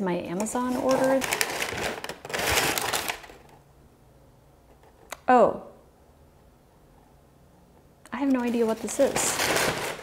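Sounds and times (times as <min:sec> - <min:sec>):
packing paper crinkling: 0:00.4 - 0:03.6, 0:08.2 - 0:10.0.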